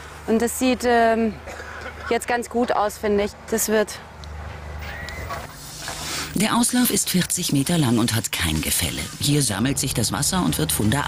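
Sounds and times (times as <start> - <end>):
shovels scraping sand: 5.2 - 6.4.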